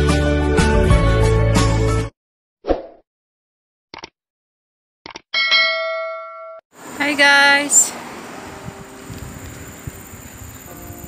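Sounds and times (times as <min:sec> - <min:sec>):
bright bell ding: 0:05.4 - 0:06.6.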